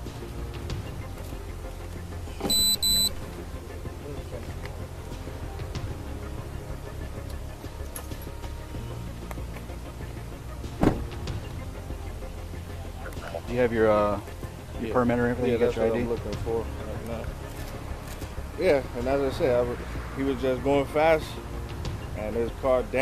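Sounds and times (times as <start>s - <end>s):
high-pitched electronic beeps: 2.5s - 3.2s
idling vehicles rumble: 3.3s - 23.0s
sharp knock: 10.8s - 11.0s.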